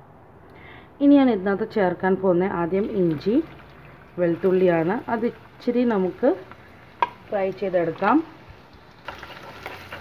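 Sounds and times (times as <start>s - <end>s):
food sizzling in hot oil: 4.1s - 10.0s
spoon stirring in pan: 8.6s - 10.0s.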